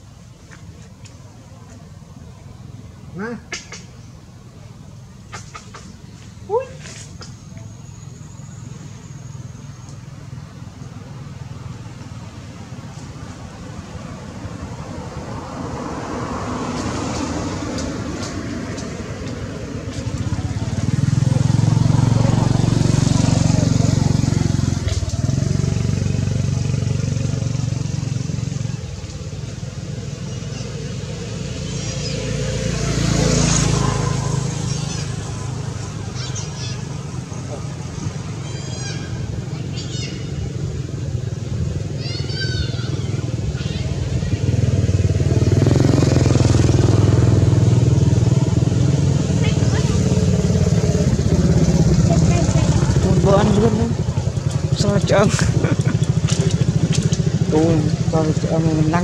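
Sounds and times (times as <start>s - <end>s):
motor engine running: 43.1s - 59.0s.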